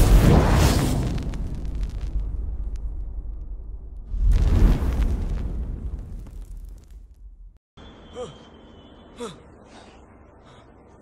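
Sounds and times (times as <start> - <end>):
low rumble: 0.0 - 7.6.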